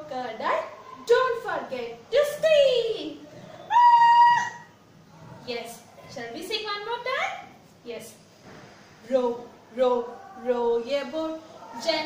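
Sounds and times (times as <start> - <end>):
woman screaming: 3.7 - 4.7.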